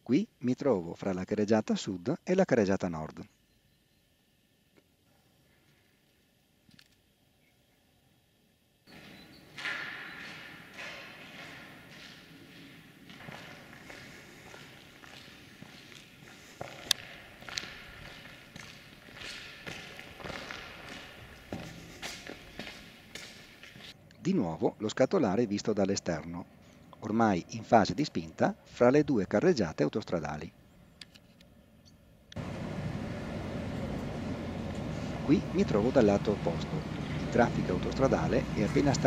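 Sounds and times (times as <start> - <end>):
footsteps on gritty concrete: 8.9 - 24.0
steady noisy background: 8.9 - 29.0, 30.5 - 39.0.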